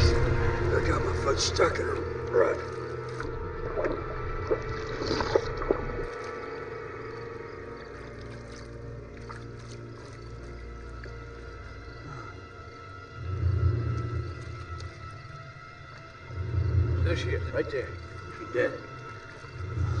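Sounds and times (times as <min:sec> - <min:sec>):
low rumble: 0:00.0 - 0:06.2
deep hum: 0:00.0 - 0:09.7
ominous horror score drone: 0:00.0 - 0:20.0.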